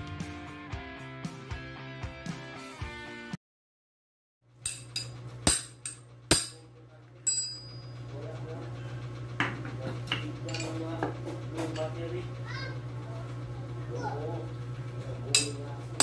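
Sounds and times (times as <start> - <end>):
steady low hum: 4.5 - 16.0
metal tools clinking: 4.7 - 6.6, 7.2 - 8.1, 10.4 - 10.9, 11.6 - 12.0, 15.3 - 16.0.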